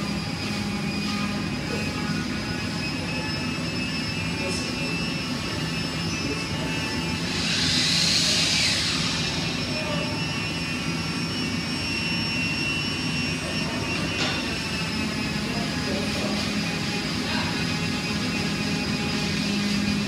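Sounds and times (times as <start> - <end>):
woodshop machinery hum: 0.0 - 20.0
hiss: 7.0 - 11.0.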